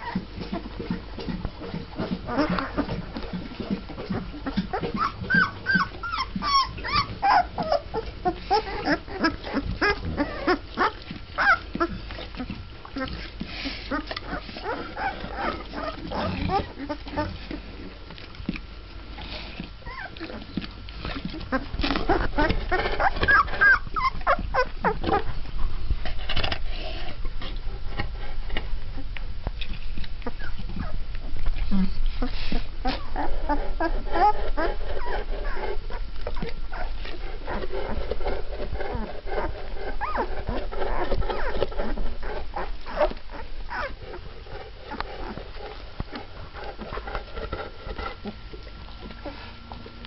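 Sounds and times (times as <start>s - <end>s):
puppies whimpering and squeaking: 0.0s - 1.0s, 1.6s - 17.7s, 19.1s - 25.4s, 30.2s - 31.0s, 31.6s - 49.6s.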